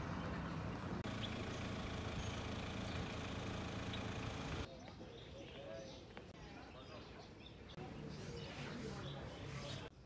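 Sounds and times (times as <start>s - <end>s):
low rumble of engines: 0.0s - 4.7s.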